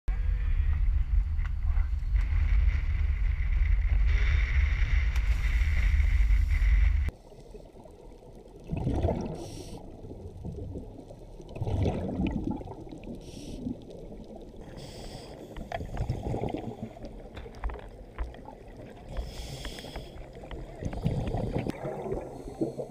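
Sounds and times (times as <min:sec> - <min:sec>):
steady low rumble: 0:00.1 - 0:08.4
scuba regulator exhaust bubbles: 0:07.5 - 0:17.5, 0:18.1 - 0:22.9.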